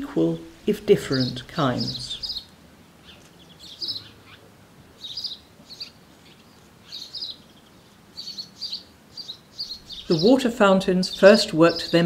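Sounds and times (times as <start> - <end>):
faint outdoor background: 0.0 - 12.0
songbird chirping: 0.0 - 12.0.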